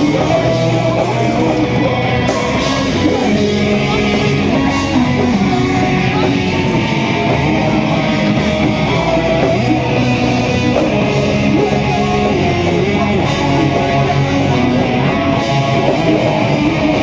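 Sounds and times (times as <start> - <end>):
drum kit: 0.0 - 17.0
electric guitar: 0.0 - 17.0
rock band playing: 0.0 - 17.0.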